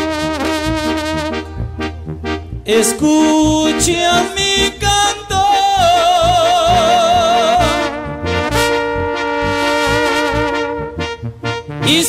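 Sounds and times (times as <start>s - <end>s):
brass section sustained chord: 0.0s - 12.0s
pulsing bass notes: 0.0s - 12.0s
person singing: 2.6s - 8.1s.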